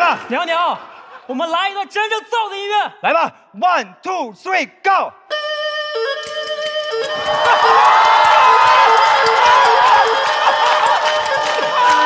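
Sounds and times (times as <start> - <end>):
erhu playing long notes: 5.4 - 12.0.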